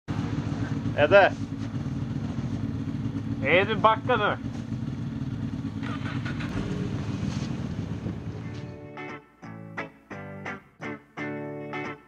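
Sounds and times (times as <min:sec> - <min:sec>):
snowmobile engine idling: 0:00.1 - 0:08.8.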